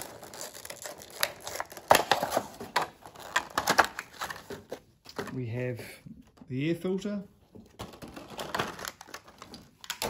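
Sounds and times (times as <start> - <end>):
plastic blister pack crinkling: 0.0 - 5.3, 7.7 - 10.0.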